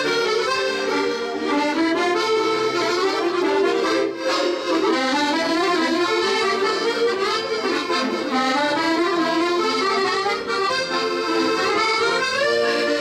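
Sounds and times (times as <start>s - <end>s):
button accordions playing: 0.0s - 13.0s.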